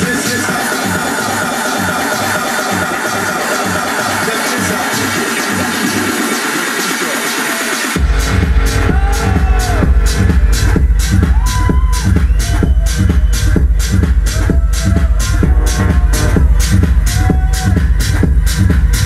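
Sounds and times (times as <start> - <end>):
techno music in a club: 0.0 - 19.0
bass kick drum: 8.0 - 19.0.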